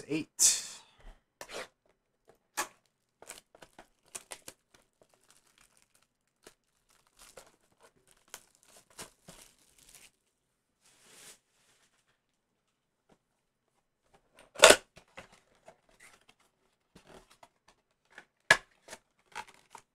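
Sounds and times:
cellophane packs crinkling: 2.8 - 10.3, 18.8 - 19.9
soft rustle: 10.8 - 12.2.

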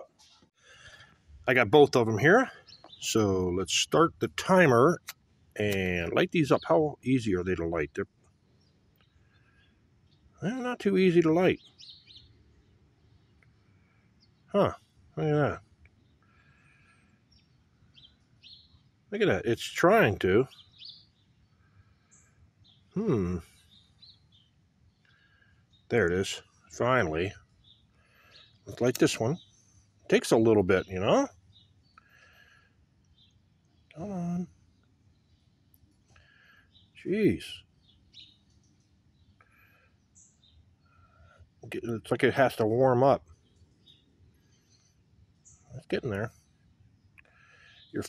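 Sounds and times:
faint bird chirps: 0.0 - 48.0.

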